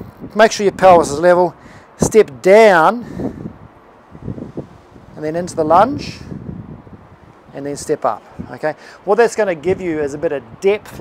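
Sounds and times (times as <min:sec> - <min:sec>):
wind on microphone: 0:00.0 - 0:02.4, 0:03.0 - 0:11.0.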